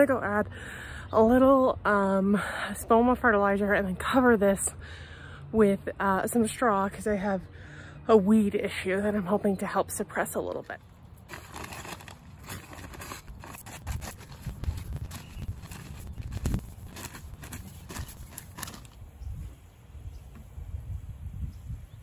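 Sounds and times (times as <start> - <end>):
rustling and scraping in garden bed: 10.2 - 19.7.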